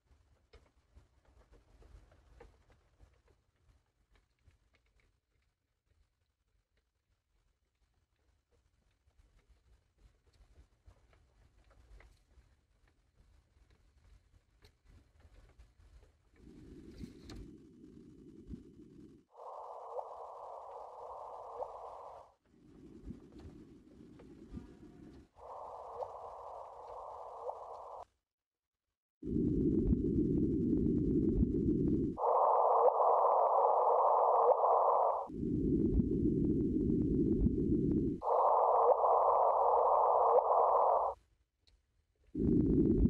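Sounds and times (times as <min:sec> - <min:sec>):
low rumbling noise: 0:16.4 - 0:28.0, 0:29.2 - 0:41.2, 0:42.4 - 0:43.0
electronic hiss with steady tone: 0:18.3 - 0:28.0, 0:29.3 - 0:41.2.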